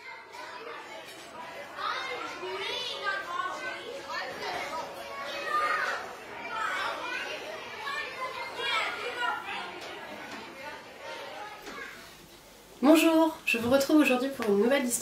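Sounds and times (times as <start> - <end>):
children chattering and calling out: 0.0 - 15.0.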